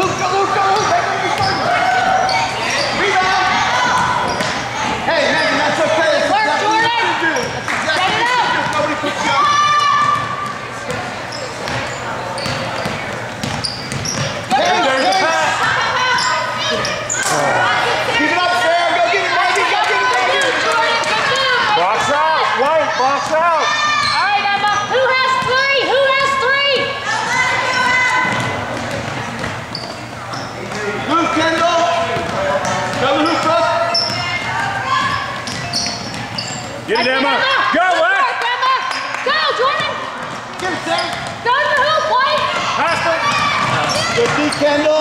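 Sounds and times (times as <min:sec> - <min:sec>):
shoes squeaking on court: 0:00.0 - 0:17.5, 0:23.2 - 0:37.5, 0:38.9 - 0:45.0
voices in echoing gym: 0:00.0 - 0:45.0
basketball dribbling on hardwood: 0:12.4 - 0:14.6, 0:28.2 - 0:29.6.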